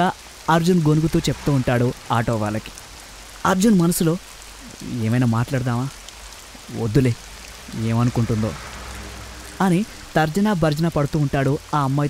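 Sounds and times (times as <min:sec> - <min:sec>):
person narrating a story: 0:00.0 - 0:02.7, 0:03.4 - 0:06.0, 0:06.6 - 0:08.6, 0:09.6 - 0:12.0
faint hiss: 0:00.0 - 0:12.0.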